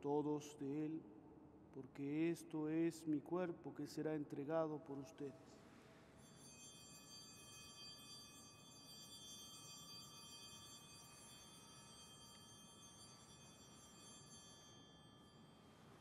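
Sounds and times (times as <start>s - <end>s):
faint ringing altar bells: 5.9s - 16.0s.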